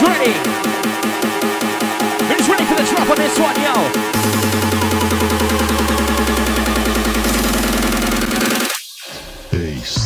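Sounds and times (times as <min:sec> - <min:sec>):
hard dance music build-up: 0:00.0 - 0:09.6.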